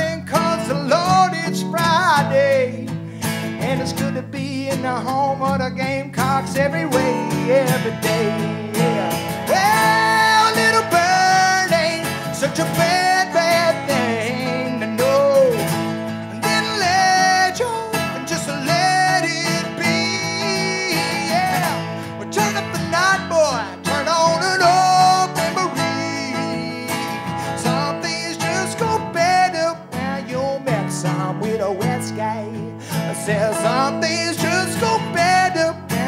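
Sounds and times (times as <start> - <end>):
acoustic guitars strumming: 0.0 - 36.0
man singing: 0.0 - 36.0.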